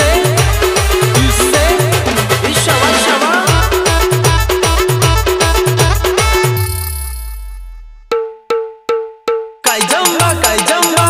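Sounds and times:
ringing pitched percussion hits: 0:06.5 - 0:09.5.

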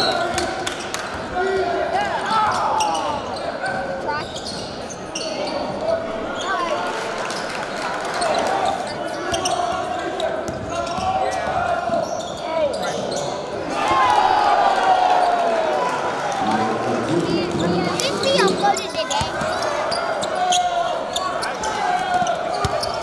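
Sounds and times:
murmur of voices: 0:00.0 - 0:23.0
sneakers squeaking: 0:02.4 - 0:06.8, 0:08.2 - 0:13.6, 0:17.3 - 0:23.0.

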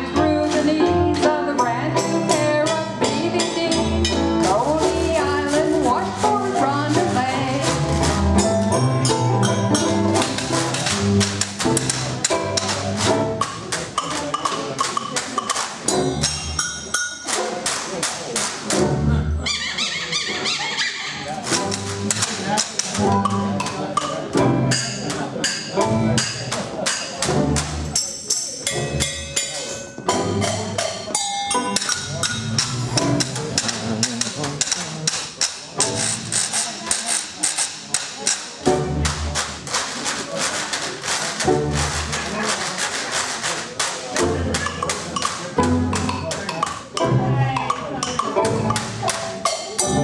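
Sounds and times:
low string bass notes: 0:00.0 - 0:14.1, 0:18.7 - 0:19.4, 0:21.4 - 0:28.0, 0:30.0 - 0:36.6, 0:38.6 - 0:39.6, 0:41.4 - 0:42.5, 0:44.1 - 0:50.0
jazz band playing: 0:00.0 - 0:50.0
sharp percussive clicks: 0:10.2 - 0:18.8, 0:30.4 - 0:50.0.

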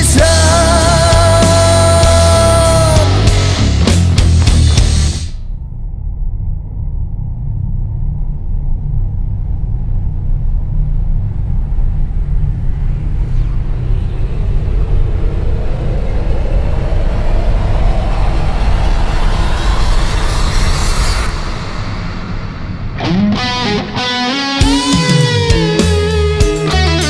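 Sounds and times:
cinematic riser sweep: 0:00.0 - 0:27.0
deep rumbling drone: 0:00.0 - 0:27.0.

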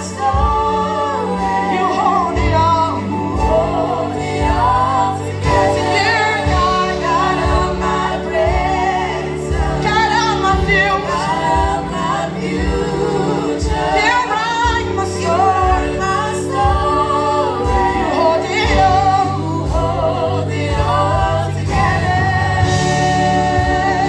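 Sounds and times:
group singing a gospel song: 0:00.0 - 0:24.0
live band playing: 0:00.0 - 0:24.0
steady drum beat: 0:00.0 - 0:24.0.

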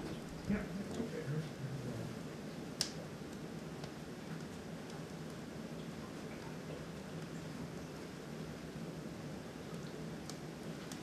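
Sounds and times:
evaporator boiling: 0:00.0 - 0:11.0.

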